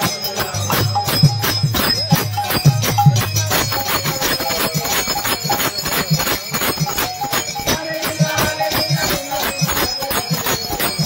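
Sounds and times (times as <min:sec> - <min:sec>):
hand clapping: 0:00.0 - 0:11.0
hand percussion beat: 0:00.0 - 0:11.0.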